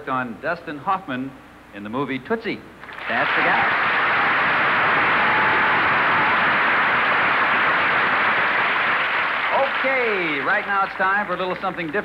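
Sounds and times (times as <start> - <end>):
audience applauding: 2.8 - 12.0.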